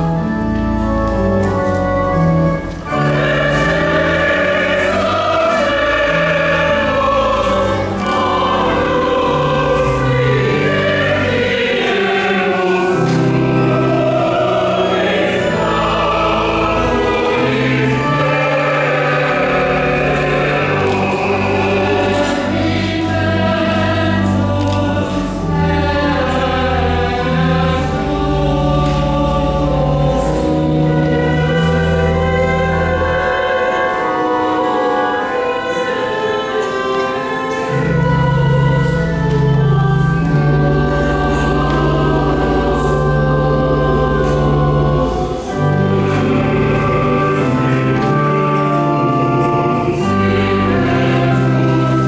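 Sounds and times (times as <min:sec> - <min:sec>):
choir singing a hymn: 0:00.0 - 0:52.0
organ chords: 0:00.0 - 0:52.0.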